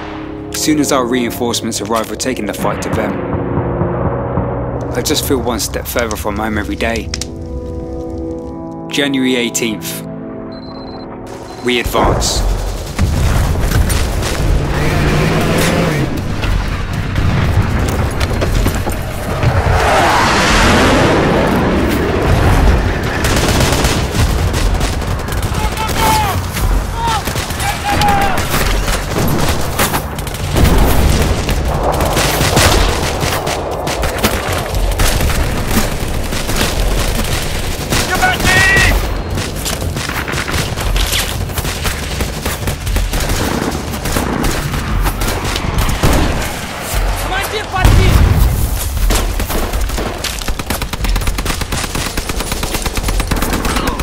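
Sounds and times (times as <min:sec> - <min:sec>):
heavy booms: 0:30.4 - 0:37.1, 0:47.8 - 0:49.8.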